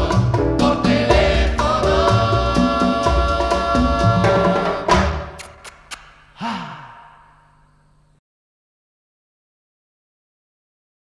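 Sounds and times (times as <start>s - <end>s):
latin dance band chord: 0.0s - 7.5s
person sighing: 6.2s - 7.8s.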